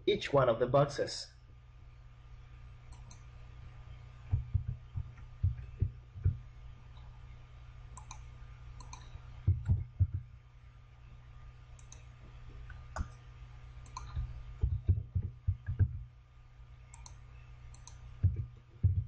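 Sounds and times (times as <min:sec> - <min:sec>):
steady low hum: 0:00.0 - 0:19.0
mouse buttons clicking: 0:02.9 - 0:03.2, 0:08.0 - 0:08.2, 0:08.8 - 0:09.7, 0:13.8 - 0:14.9, 0:16.9 - 0:18.4
keyboard keys clicking: 0:08.8 - 0:10.2, 0:13.8 - 0:16.0.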